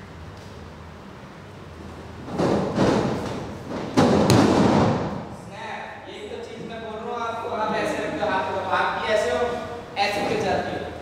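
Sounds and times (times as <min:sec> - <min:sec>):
wrestler slamming onto mat: 0:02.3 - 0:05.2
bodies thudding on wrestling mat: 0:02.3 - 0:05.3.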